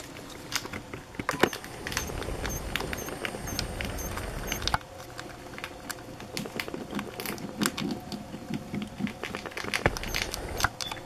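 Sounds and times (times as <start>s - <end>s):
rat gnawing on a nutshell: 1.7s - 10.8s.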